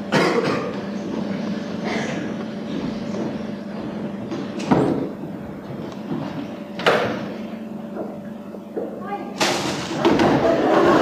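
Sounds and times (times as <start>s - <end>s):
tape hum and hiss: 0.0s - 11.0s.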